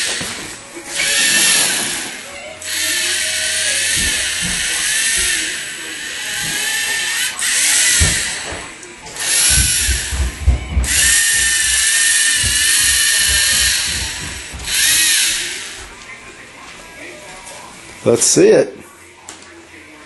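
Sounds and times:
servo motors whining: 0:00.0 - 0:16.0.

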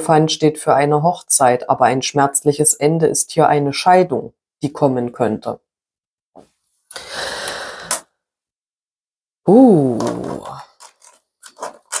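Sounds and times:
cards shuffling: 0:09.9 - 0:12.0.

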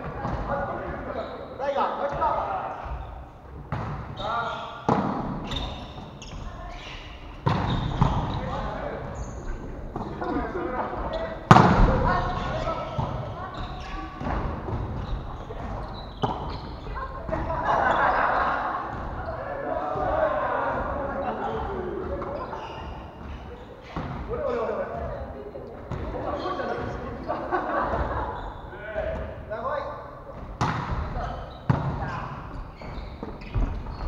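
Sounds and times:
players calling out: 0:04.2 - 0:29.4
volleyball being struck: 0:11.5 - 0:12.1.

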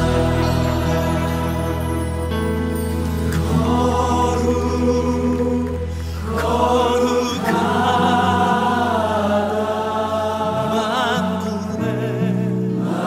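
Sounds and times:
low accompaniment: 0:00.0 - 0:08.8
voices singing worship song: 0:00.0 - 0:13.0.

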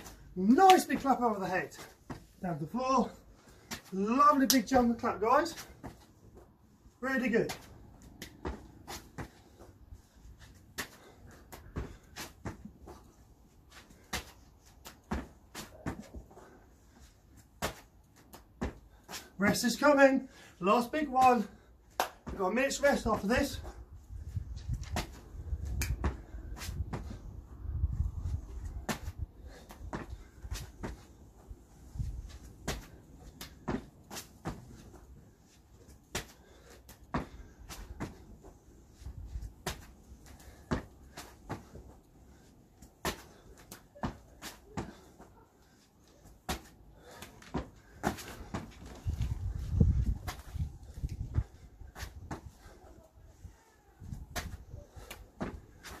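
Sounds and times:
hand claps: 0:22.0 - 0:22.2.

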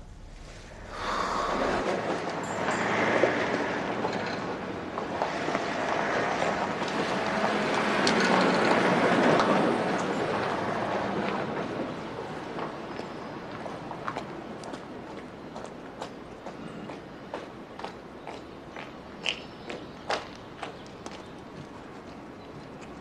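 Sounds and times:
outdoor rushing noise: 0:00.0 - 0:12.4.

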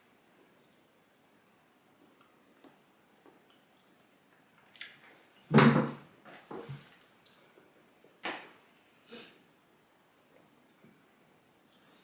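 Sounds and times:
wooden chair knocking and scraping: 0:05.5 - 0:06.9
soft knocks and handling noises: 0:05.5 - 0:07.0.

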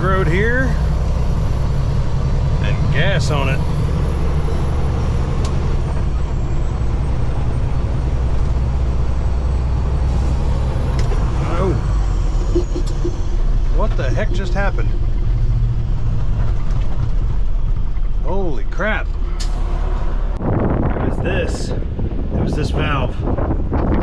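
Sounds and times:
driver voice sounds: 0:00.0 - 0:00.8, 0:02.6 - 0:03.6, 0:13.7 - 0:15.0, 0:18.2 - 0:19.1, 0:21.0 - 0:23.3
diesel truck engine drone: 0:00.0 - 0:24.0.

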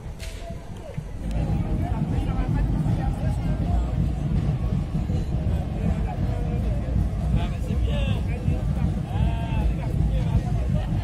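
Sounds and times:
parade music rumble: 0:00.0 - 0:11.0.

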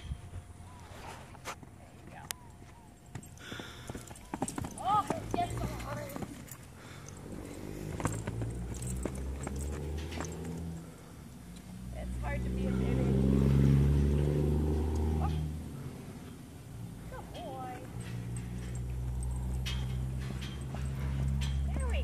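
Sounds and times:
low engine hum: 0:00.0 - 0:22.0
horse hoofbeats on dirt: 0:01.6 - 0:11.0, 0:17.1 - 0:22.0.

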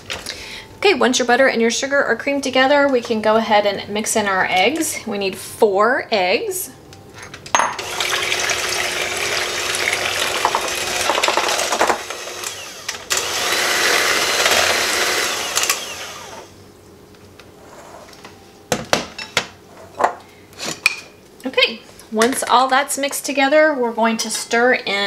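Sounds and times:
electric mixer in glass bowl: 0:07.8 - 0:16.5.

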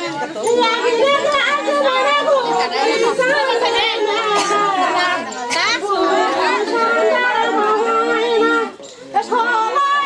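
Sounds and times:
women talking and calling: 0:00.0 - 0:10.0.

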